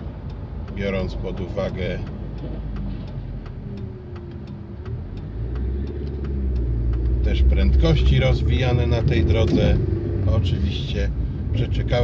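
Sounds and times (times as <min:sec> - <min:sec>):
car engine: 0:00.0 - 0:12.0
turn indicator ticking: 0:00.0 - 0:12.0
car passing: 0:02.1 - 0:12.0.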